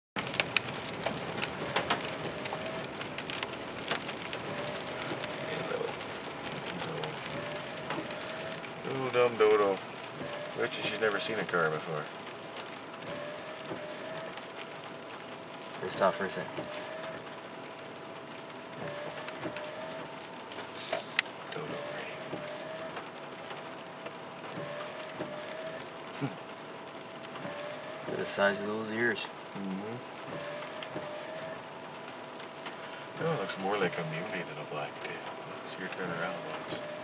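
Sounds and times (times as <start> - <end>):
faint steady whine: 0.2 - 37.0
rain on a car roof: 0.2 - 37.0
faint drip ticks: 0.3 - 37.0.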